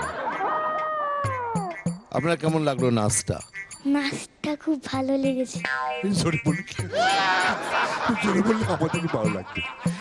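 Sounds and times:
high-pitched meow-like cry: 0.7s - 1.7s
man speaking: 6.1s - 7.0s, 8.2s - 9.6s.

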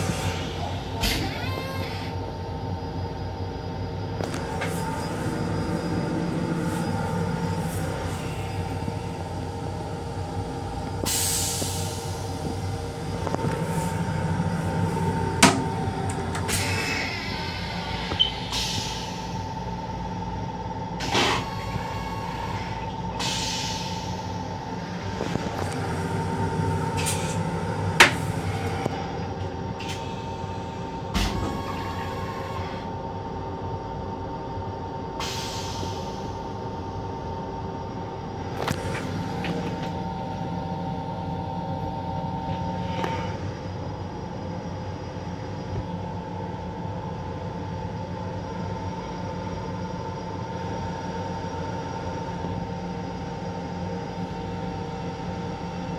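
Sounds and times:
steady whining tones: 0.0s - 35.2s, 36.2s - 55.9s
train rumble and hum: 0.0s - 55.9s.

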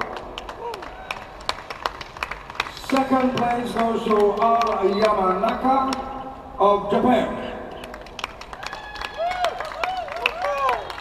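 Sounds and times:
scattered hand clapping: 0.0s - 6.1s, 7.7s - 11.0s.

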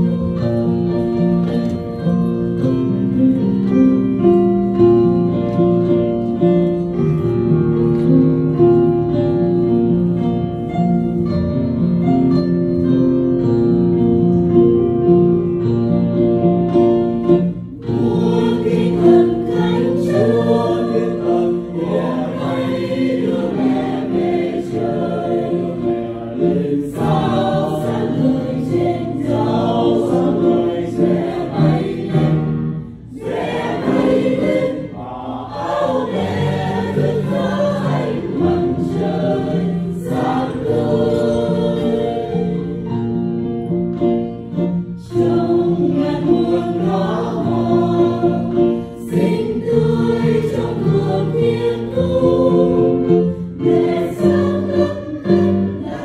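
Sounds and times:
mixed choir singing a hymn: 16.4s - 56.0s.

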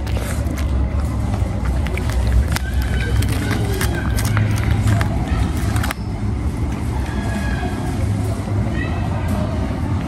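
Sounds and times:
cat chewing and lapping: 0.0s - 6.0s
steady low rumble: 0.0s - 10.0s.

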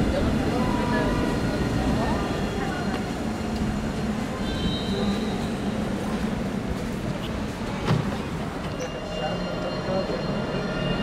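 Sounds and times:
tram rumble and hum: 0.0s - 11.0s.

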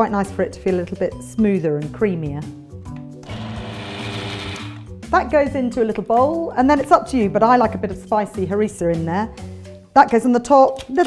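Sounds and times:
food processor whizzing: 3.2s - 4.9s.

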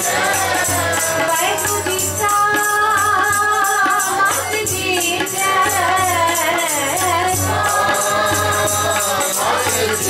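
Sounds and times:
congregation singing along: 0.0s - 2.0s, 5.4s - 10.0s
tabla: 0.0s - 10.0s.

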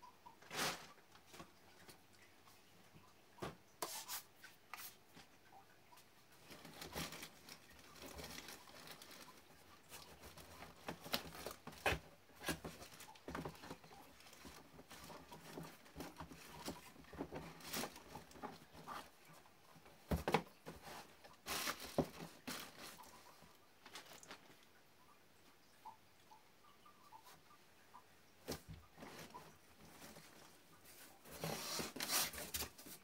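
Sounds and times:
clothes and plastic rustling: 0.2s - 26.0s, 27.0s - 33.0s.

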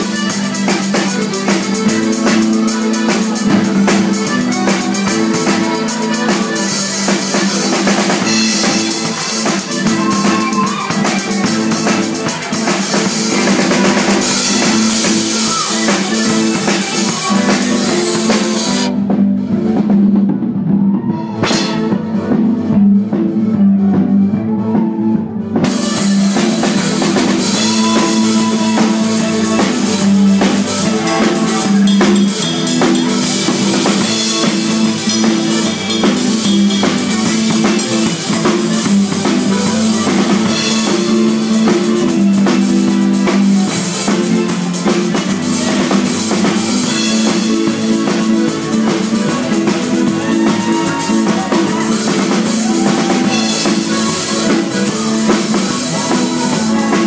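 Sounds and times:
cymbals: 0.0s - 19.0s, 25.6s - 57.0s
drum kit beat: 0.0s - 57.0s
folk band playing dance music: 0.0s - 57.0s.

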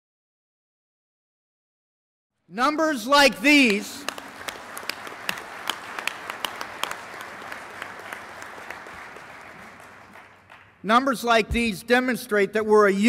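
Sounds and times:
audience applauding: 3.1s - 10.8s.

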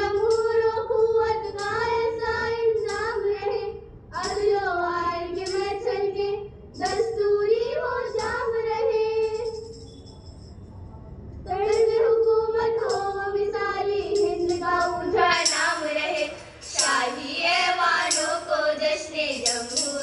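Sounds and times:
girls singing together: 0.0s - 9.8s, 11.5s - 20.0s.

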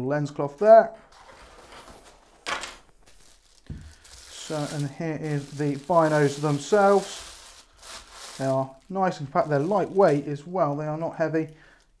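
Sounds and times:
soft low thump: 3.6s - 4.0s.

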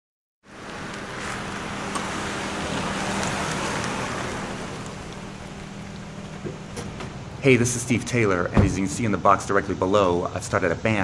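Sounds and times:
road traffic noise: 0.4s - 11.0s.

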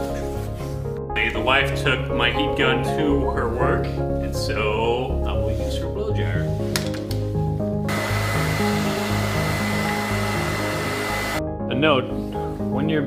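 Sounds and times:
hair dryer blowing: 7.9s - 11.4s
hair dryer switch: 7.9s - 11.4s.

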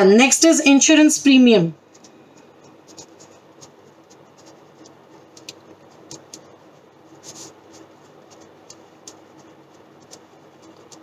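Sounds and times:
pen scratching on paper: 1.9s - 11.0s.

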